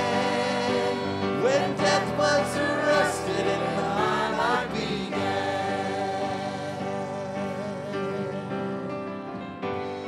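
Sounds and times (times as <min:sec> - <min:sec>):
electric keyboard: 0:00.0 - 0:10.0.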